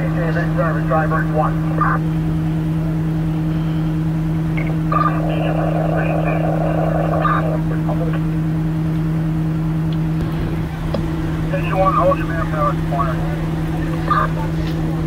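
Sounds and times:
diesel engine droning: 0.0 - 15.0
indistinct voices: 4.6 - 8.3, 10.2 - 15.0.

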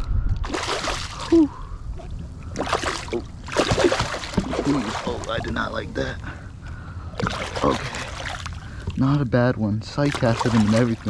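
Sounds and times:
fish thrashing water splashing: 0.4 - 1.4, 2.5 - 5.6, 7.1 - 8.9, 10.0 - 11.0.

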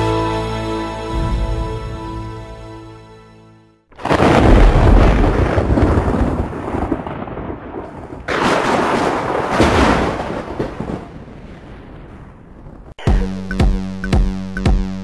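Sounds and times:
thunder crack and rumble: 4.0 - 13.0.

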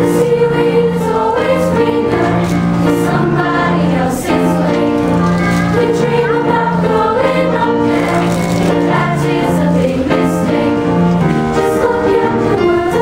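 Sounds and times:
children's choir singing: 0.0 - 13.0.

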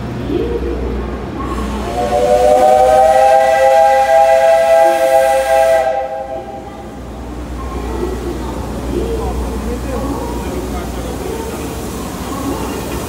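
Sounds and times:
steam locomotive whistle: 1.5 - 6.7
steam hissing: 1.5 - 7.3, 8.0 - 13.0.

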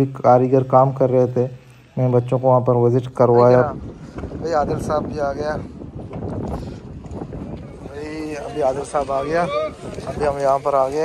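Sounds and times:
wind buffeting microphone: 2.7 - 11.0.

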